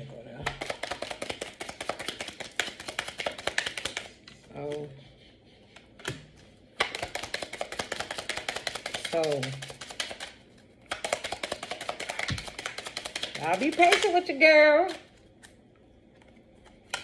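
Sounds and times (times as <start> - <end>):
cards being shuffled: 0.6 - 4.1, 6.8 - 14.3.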